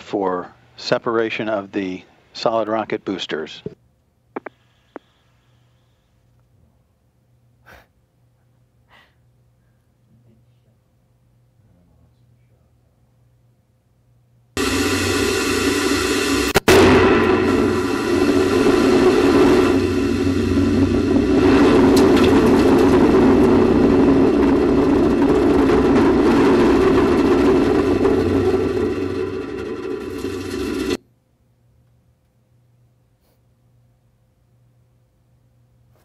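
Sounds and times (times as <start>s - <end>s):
ringing whine: 14.6s - 31.0s
rocket booster roar: 14.6s - 31.0s.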